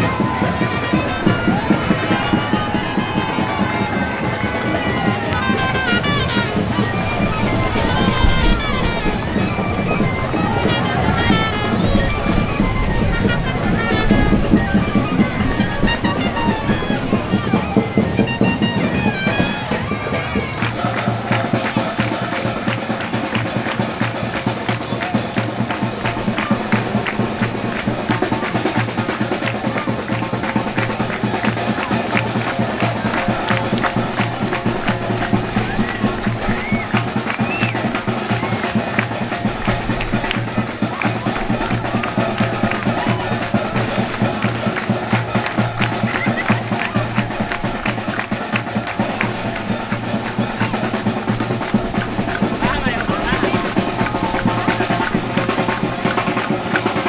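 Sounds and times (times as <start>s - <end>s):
parade band music: 0.0s - 57.0s.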